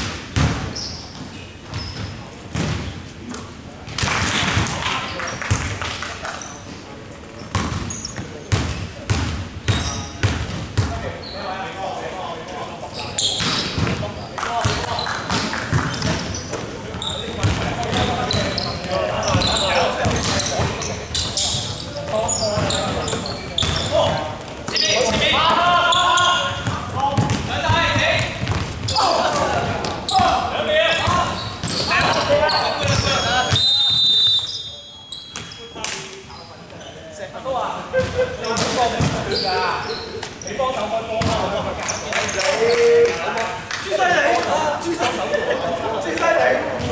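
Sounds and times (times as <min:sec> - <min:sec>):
basketball bouncing on wooden floor: 0:00.4 - 0:00.7, 0:01.7 - 0:02.9, 0:07.5 - 0:07.9, 0:14.6 - 0:16.4, 0:17.4 - 0:18.5, 0:22.1 - 0:24.2, 0:26.6 - 0:29.6.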